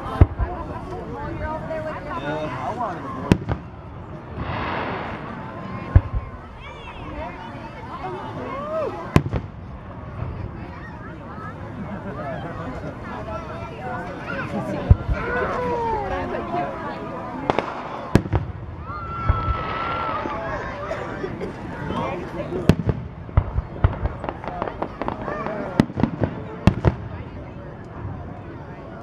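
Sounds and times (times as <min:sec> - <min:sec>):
fireworks bangs: 0:00.0 - 0:08.4, 0:09.0 - 0:11.6, 0:14.4 - 0:16.5, 0:17.4 - 0:20.6, 0:22.3 - 0:28.5.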